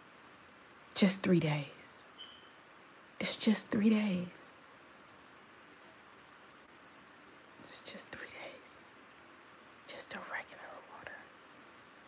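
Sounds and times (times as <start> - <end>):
faint steady hiss: 0.0 - 12.0
woman speaking quietly: 0.9 - 2.1, 3.2 - 4.6, 7.6 - 8.9, 9.9 - 11.3.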